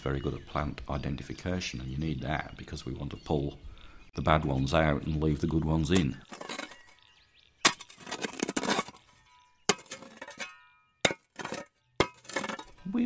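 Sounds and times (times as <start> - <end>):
scraping through soil: 5.2 - 13.0
metal digging tool striking ground: 5.4 - 7.0, 7.6 - 13.0.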